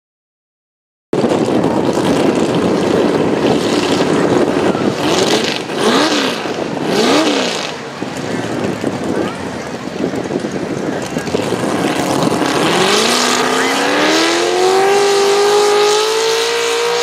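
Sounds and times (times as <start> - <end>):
tractor engine revving: 1.2 - 17.0.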